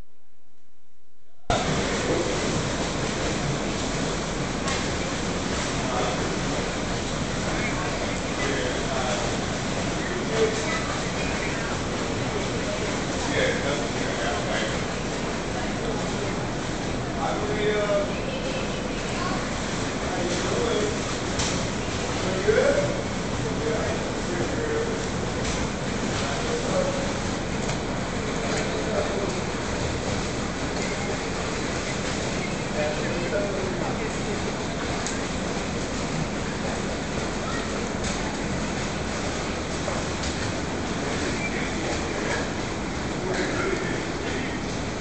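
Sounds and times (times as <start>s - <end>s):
noisy pool background: 0.0s - 45.0s
distant children's voices: 7.5s - 13.6s, 17.9s - 20.9s, 36.6s - 38.6s.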